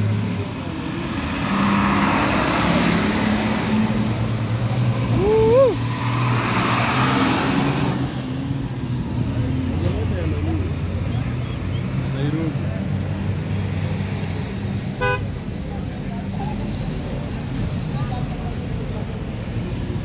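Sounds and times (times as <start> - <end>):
diesel engines humming: 0.0 - 20.0.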